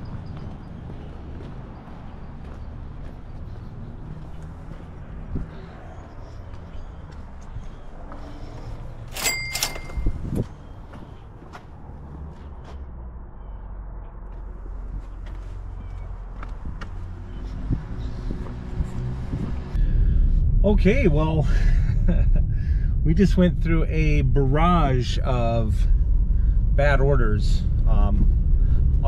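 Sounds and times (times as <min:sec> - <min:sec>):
sharp clicks with ringing tone: 0:09.1 - 0:10.2
footsteps: 0:09.8 - 0:12.9, 0:14.2 - 0:19.5.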